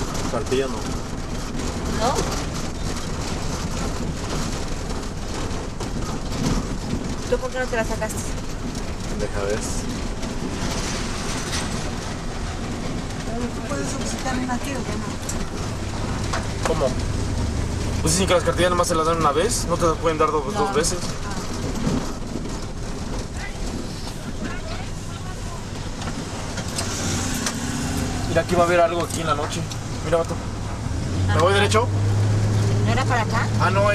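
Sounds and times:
car engine and road noise: 0.0s - 33.9s.

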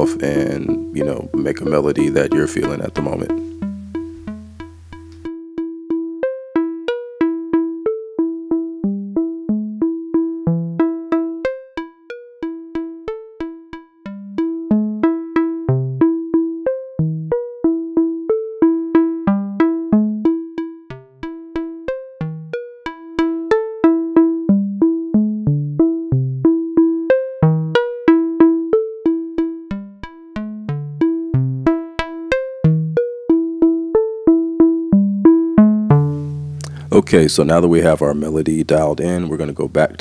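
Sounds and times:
synthesizer plucked notes: 0.0s - 40.0s.

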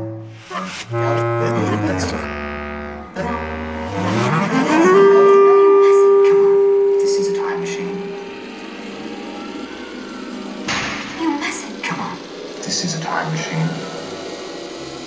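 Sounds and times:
bass clarinet tones: 0.0s - 8.7s.

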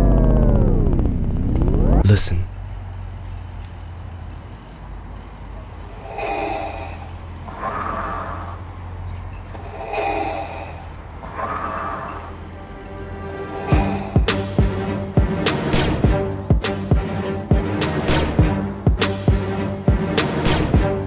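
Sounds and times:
soft synth pad chords: 0.0s - 2.0s, 4.4s - 21.0s
low bass drone: 0.0s - 3.0s, 5.9s - 21.0s.

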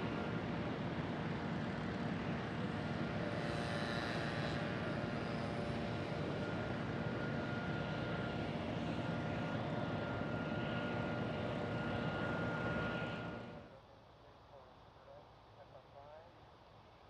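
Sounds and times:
propeller plane engines droning: 0.0s - 13.7s
faint high whine: 0.0s - 13.8s.

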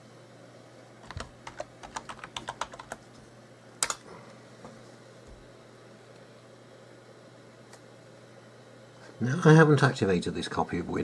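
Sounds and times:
keyboard typing: 1.0s - 3.0s.

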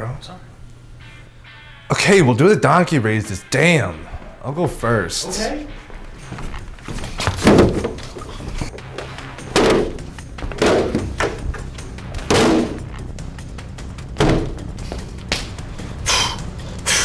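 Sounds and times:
plastic platform thudding on wooden floor: 7.3s - 8.0s.

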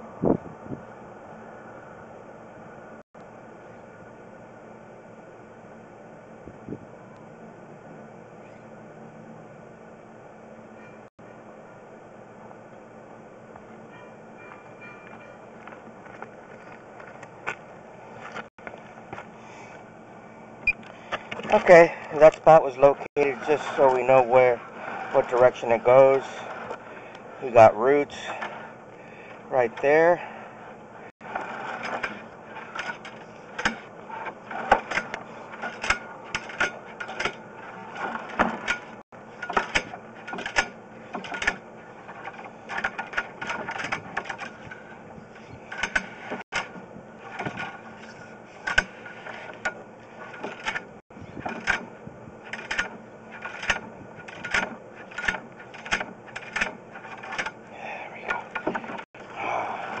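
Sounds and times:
steady low hum: 0.0s - 60.0s.

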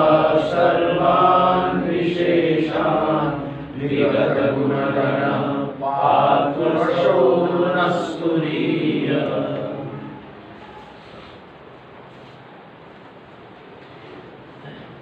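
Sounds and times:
man chanting verses: 0.0s - 10.3s.

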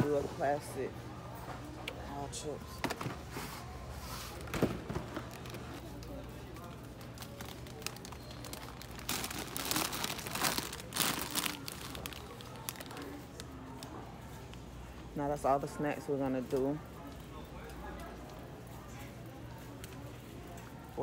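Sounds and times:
low store hum: 0.0s - 21.0s
plastic bags crinkling: 4.3s - 13.5s.

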